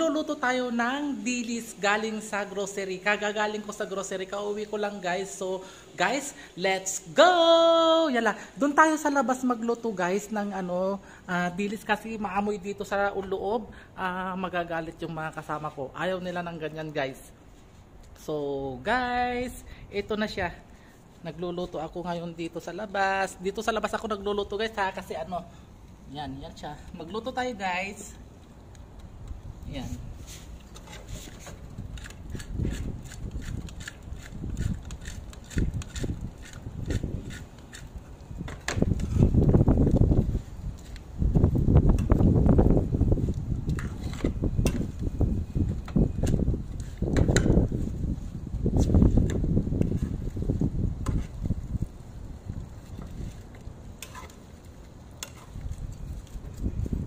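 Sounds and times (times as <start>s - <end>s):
spoon scraping pan: 53.1s - 56.1s
metal spoon scraping frying pan: 54.0s - 54.4s.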